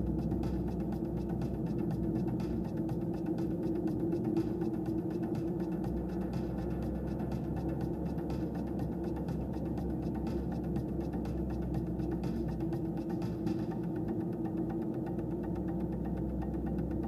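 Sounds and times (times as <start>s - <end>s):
engine and tyre rumble: 0.0s - 17.0s
music playing: 0.0s - 17.0s.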